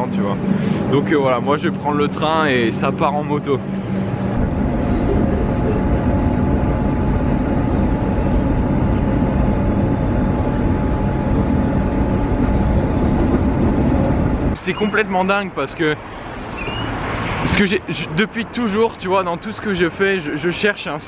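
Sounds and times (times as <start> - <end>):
train rumbling on track: 0.0 - 21.0.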